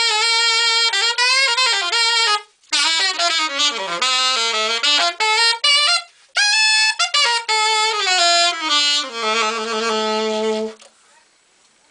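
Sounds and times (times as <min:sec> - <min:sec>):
alto saxophone jazz run: 0:00.0 - 0:11.3.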